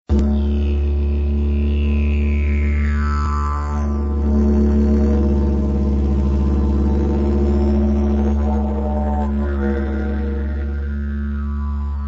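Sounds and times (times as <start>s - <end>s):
didgeridoo drone: 0.1s - 12.0s.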